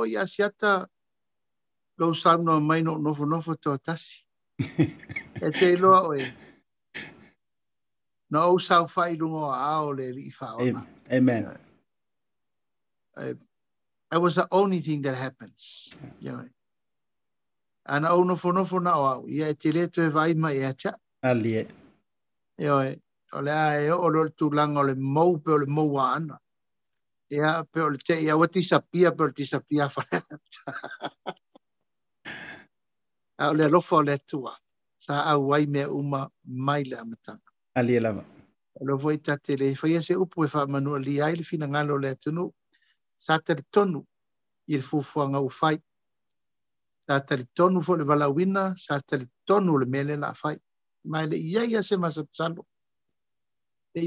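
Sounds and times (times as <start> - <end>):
man speaking: 2.0 - 7.2, 8.3 - 11.6, 17.9 - 21.8, 22.6 - 26.4, 27.3 - 31.3, 32.3 - 32.6, 33.4 - 42.5, 47.1 - 52.6
man's pitched vocal sounds: 4.7 - 7.2
man sighing: 32.3 - 32.6.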